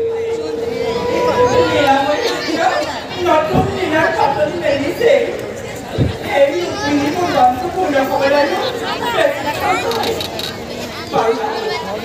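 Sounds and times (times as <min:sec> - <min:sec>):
held musical note: 0:00.0 - 0:02.6.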